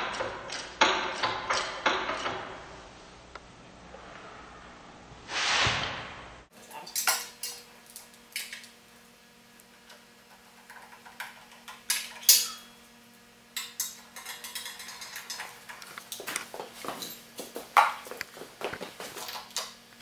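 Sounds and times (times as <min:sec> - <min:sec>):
faint steady hum: 0:06.4 - 0:20.0.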